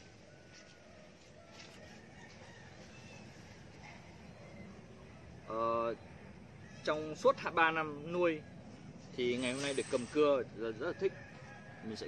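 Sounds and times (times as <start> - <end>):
low outdoor hum: 0.0 - 12.0.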